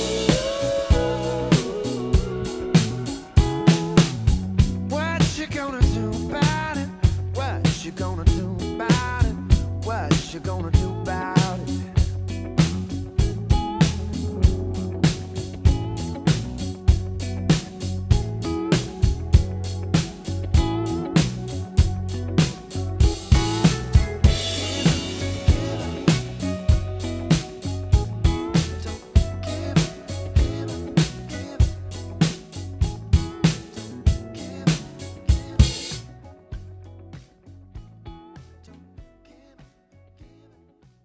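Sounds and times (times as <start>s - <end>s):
drum kit groove: 0.0s - 38.6s
backing track music: 0.0s - 40.6s
recorded song with guitar and bass: 0.0s - 41.0s.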